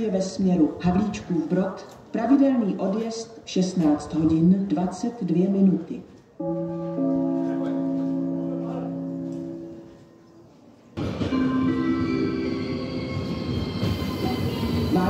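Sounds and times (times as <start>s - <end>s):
train metallic whine: 6.4s - 10.3s, 11.0s - 15.0s
public address chime: 6.4s - 10.4s.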